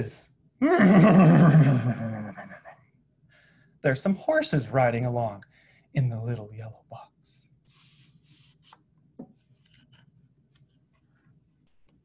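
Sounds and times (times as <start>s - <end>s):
soft brushing sounds: 7.6s - 11.4s
book pages rustling and turning: 7.7s - 12.0s.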